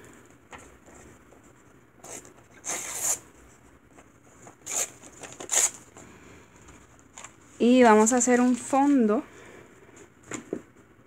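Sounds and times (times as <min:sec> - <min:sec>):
book pages rustling and tearing: 0:02.0 - 0:03.2.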